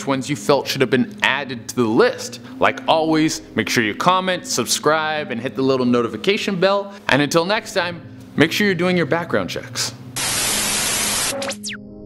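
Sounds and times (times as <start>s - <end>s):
static hiss: 10.2s - 11.6s.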